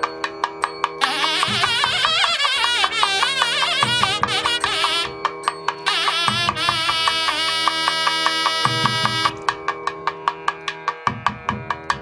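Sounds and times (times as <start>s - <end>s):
sharp drum strokes: 0.0s - 12.0s
sustained melodic tones: 0.1s - 9.8s.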